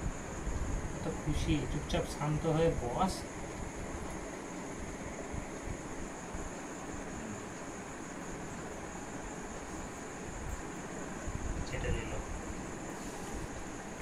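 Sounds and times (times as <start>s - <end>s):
faint high hiss: 0.0s - 14.0s.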